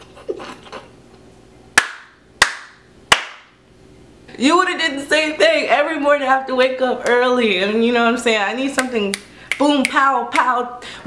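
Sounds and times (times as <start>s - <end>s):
soft laughter: 0.0s - 1.0s
sharp hand claps: 1.8s - 3.5s, 8.8s - 10.5s.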